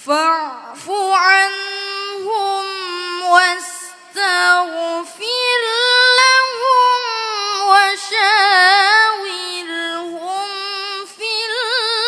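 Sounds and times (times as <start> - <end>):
solo voice chanting recitation: 0.0 - 12.0.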